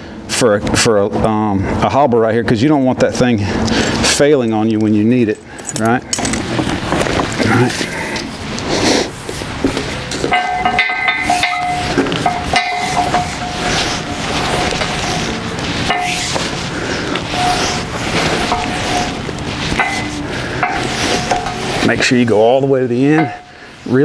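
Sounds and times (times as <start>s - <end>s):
leather strap squeaking on beam: 11.1s - 22.0s.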